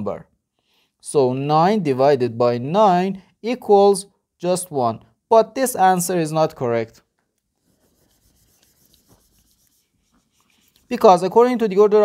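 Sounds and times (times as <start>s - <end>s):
eraser rubbing on whiteboard: 7.6s - 11.2s.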